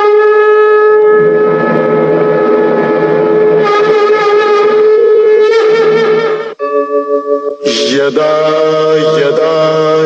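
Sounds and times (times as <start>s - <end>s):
conch shell note: 0.0s - 7.9s.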